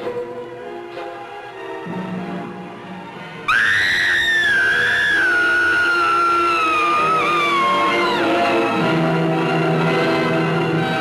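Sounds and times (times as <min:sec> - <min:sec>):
horror soundtrack music: 0:01.7 - 0:11.0
woman screaming: 0:03.5 - 0:08.8.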